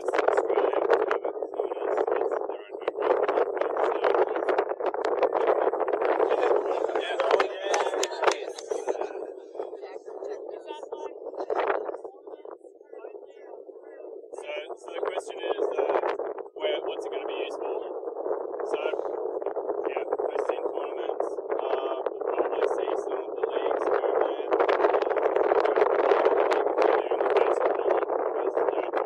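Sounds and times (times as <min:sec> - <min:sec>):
wind buffeting microphone: 0:00.0 - 0:29.0
indistinct group speech: 0:05.2 - 0:15.9.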